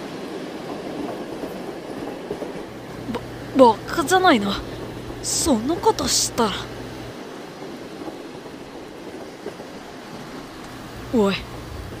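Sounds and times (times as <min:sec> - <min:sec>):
steady background noise: 0:02.3 - 0:12.0.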